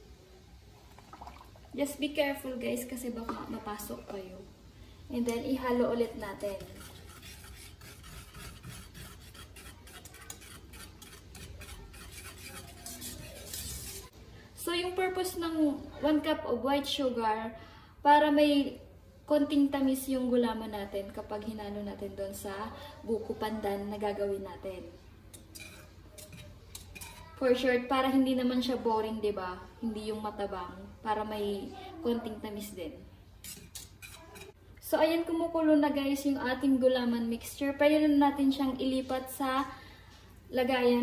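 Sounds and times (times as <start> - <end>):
wire whisk scraping metal pan: 6.2 - 14.1, 25.3 - 27.4, 33.4 - 34.6.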